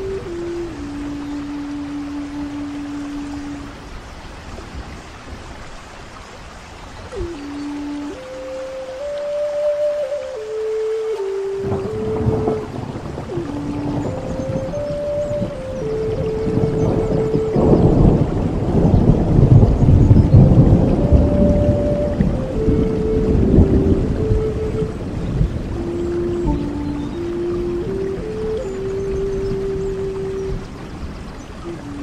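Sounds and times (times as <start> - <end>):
flute playing slow melody: 0.0 - 4.7, 7.0 - 32.0
steady rain: 0.0 - 32.0
rumble of thunder: 11.6 - 28.1.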